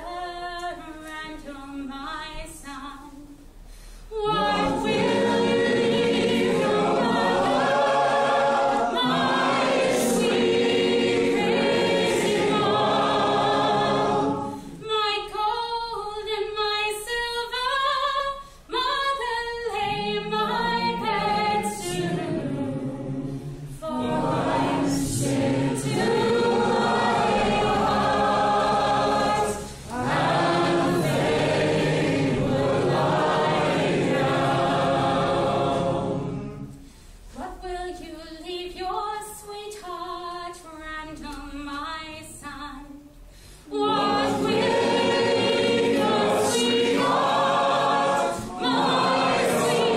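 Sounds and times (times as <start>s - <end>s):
woman singing: 0.0s - 3.4s, 14.8s - 22.1s, 37.4s - 43.1s
group singing unaccompanied: 4.1s - 38.1s, 43.6s - 49.9s.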